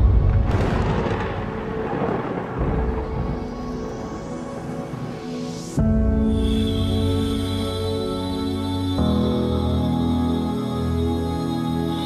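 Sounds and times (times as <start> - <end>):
thunder rumbling: 0.0 - 5.2.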